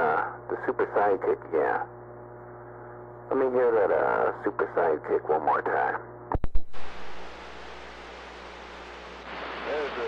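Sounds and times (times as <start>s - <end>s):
radio static hiss: 0.0s - 10.0s
low hum: 6.1s - 10.0s
radio static burst: 6.3s - 10.0s.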